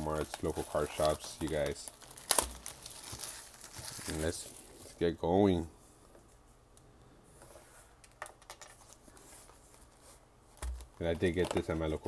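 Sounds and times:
plastic crinkling: 0.0s - 5.0s
plastic wrap tearing: 0.0s - 5.0s.

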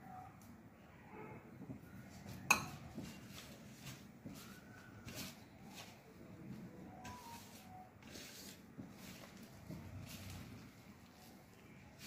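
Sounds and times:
hand mixing flour rustles: 1.6s - 12.0s.

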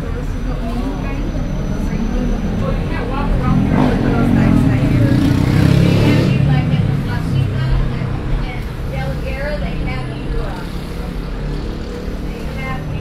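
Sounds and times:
bus drive and road rumble: 0.0s - 13.0s
people talking: 0.0s - 13.0s.

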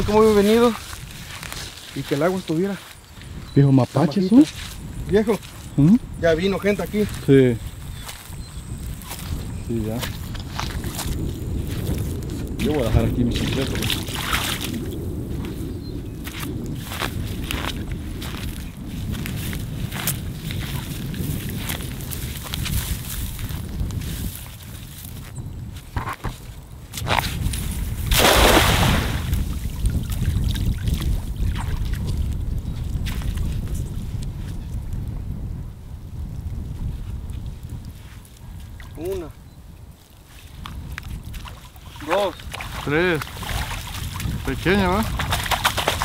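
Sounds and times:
feet splashing through muddy water: 0.0s - 3.5s, 6.7s - 25.9s, 27.0s - 34.2s, 39.9s - 46.0s.

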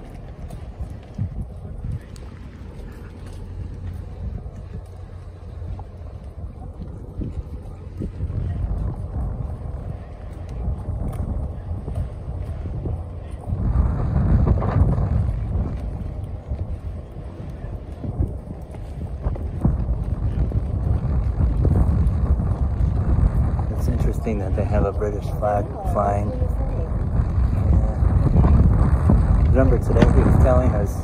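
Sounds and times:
wind buffeting microphone: 0.0s - 31.0s.

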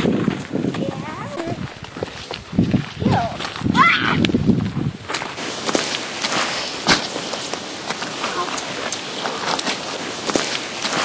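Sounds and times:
footsteps sliding on gravel: 0.0s - 11.0s.

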